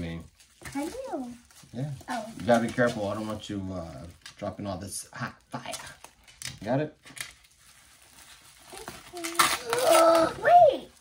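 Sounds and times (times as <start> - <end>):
cards and packaging rustling: 0.0 - 11.0.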